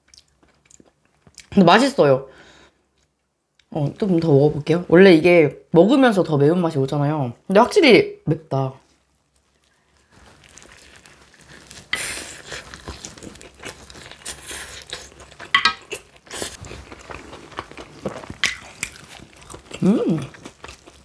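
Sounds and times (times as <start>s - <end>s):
wet chewing: 9.3s - 21.0s
loud crunching bites: 10.4s - 21.0s.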